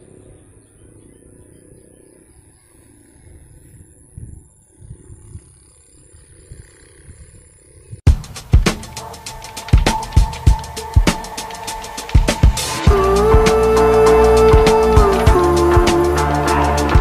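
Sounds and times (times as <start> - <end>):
wind buffeting microphone: 3.2 - 8.0.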